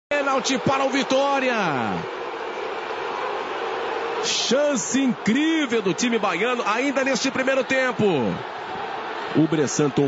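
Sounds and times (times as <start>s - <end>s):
stadium crowd noise: 0.1s - 10.0s.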